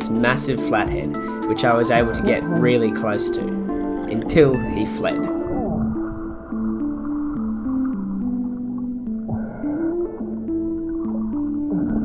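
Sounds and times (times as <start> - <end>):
sustained synthesizer notes: 0.0 - 12.0.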